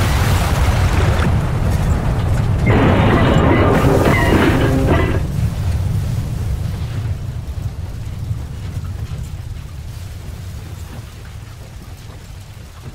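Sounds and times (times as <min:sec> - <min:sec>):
low rumbling: 0:02.0 - 0:07.5.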